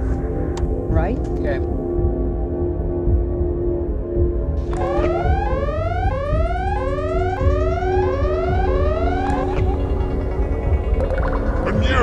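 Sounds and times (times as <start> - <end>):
low droning music: 0.0 - 12.0
rising whoop siren tone: 4.7 - 10.2.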